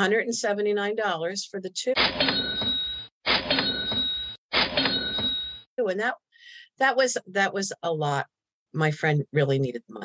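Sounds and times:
cash register ring: 2.0 - 5.7.

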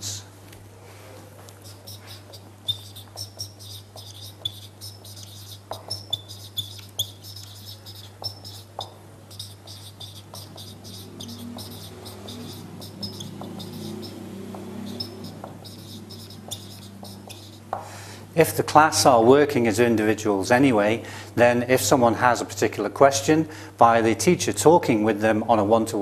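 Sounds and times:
steady low hum: 0.0 - 21.5
marker squeaking on whiteboard: 1.6 - 17.8.

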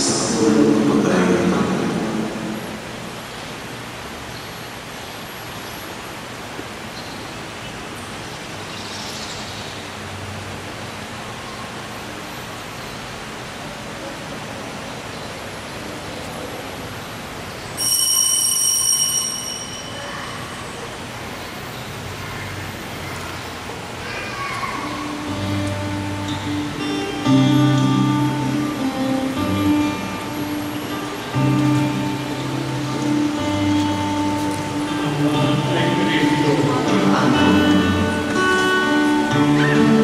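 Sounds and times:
steady background hiss: 0.0 - 40.0
high bright ringing tones: 17.8 - 23.3.

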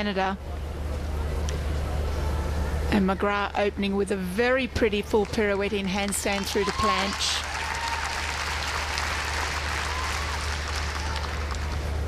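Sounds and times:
steady low hum: 0.0 - 12.0
crowd applauding: 5.2 - 12.0.

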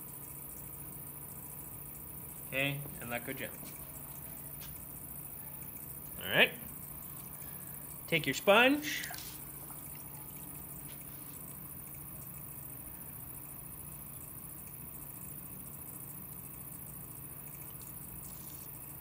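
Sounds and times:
potter's wheel humming: 0.0 - 19.0
wet sponge rubbing on clay: 9.1 - 9.5, 18.3 - 18.8.

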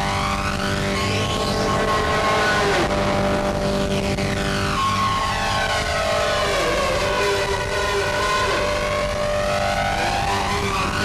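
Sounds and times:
harsh distorted noise music: 0.0 - 11.0
tone sliding down in pitch: 0.0 - 11.0.

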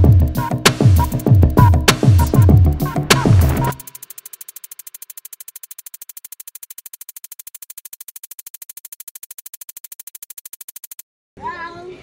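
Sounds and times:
rapid electronic pulsing: 0.0 - 11.0.

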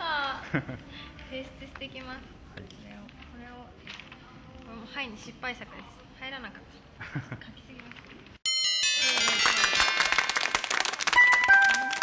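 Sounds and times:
chiming jingle: 8.5 - 12.0
rattling percussion: 8.5 - 12.0.

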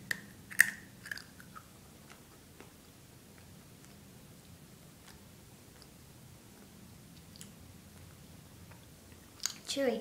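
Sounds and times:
wet mouth clicks: 0.1 - 2.2
person chewing wetly: 0.1 - 4.1, 4.8 - 6.0, 6.6 - 9.6.

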